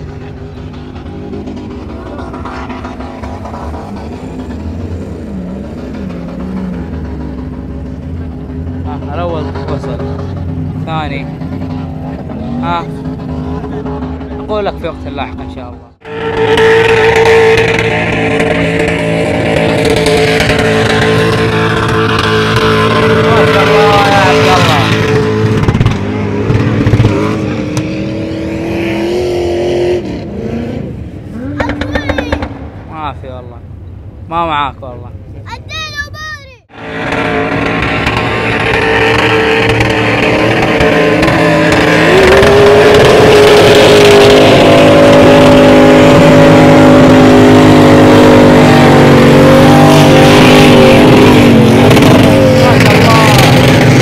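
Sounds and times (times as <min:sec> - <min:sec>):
off-road engines revving: 0:00.0 - 0:54.0.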